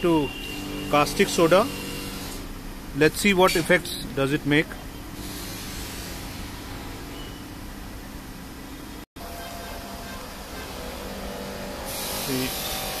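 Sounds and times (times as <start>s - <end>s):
steady background hum and hiss: 0.0s - 13.0s.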